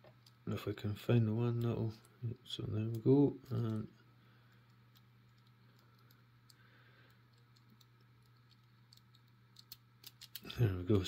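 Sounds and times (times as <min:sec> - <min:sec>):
faint steady hum: 0:00.0 - 0:11.0
padlock number wheels clicking: 0:04.6 - 0:10.5.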